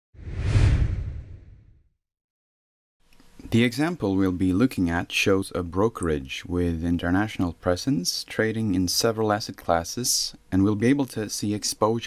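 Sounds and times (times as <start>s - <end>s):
deep low rumble: 0.2s - 1.7s
logo whoosh: 0.2s - 1.8s.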